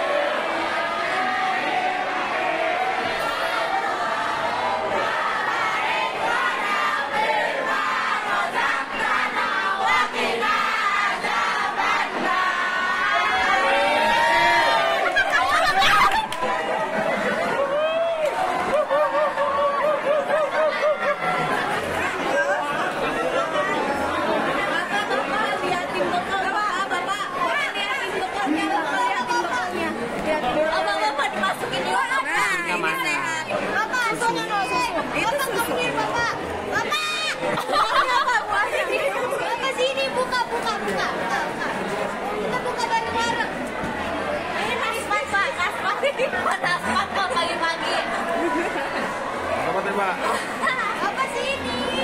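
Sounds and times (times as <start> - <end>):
students chattering: 0.0 - 52.0.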